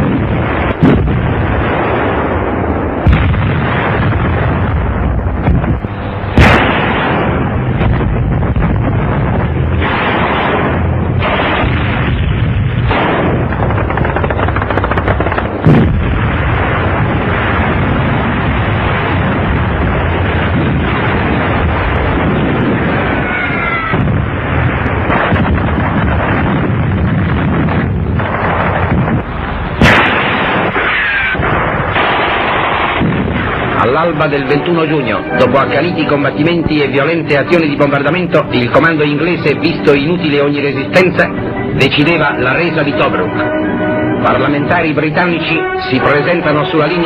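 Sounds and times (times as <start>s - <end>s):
explosions: 0.0s - 43.2s
continuous rumble: 0.0s - 47.0s
gunfire: 6.4s - 7.5s, 9.7s - 16.8s, 25.0s - 26.6s, 29.8s - 33.8s
rapid gunfire: 12.8s - 16.0s
machine-gun fire: 12.8s - 16.1s.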